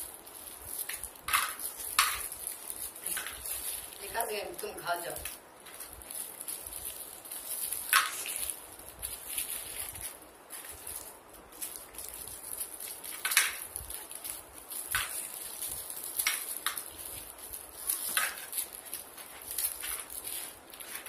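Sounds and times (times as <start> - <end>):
sharp wrapper crinkles: 0.0 - 21.0
toffee wrappers rustling: 0.0 - 21.0.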